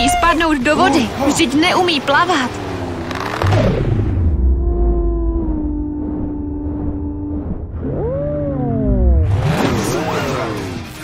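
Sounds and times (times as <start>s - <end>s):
swooping tones: 0.0s - 10.2s.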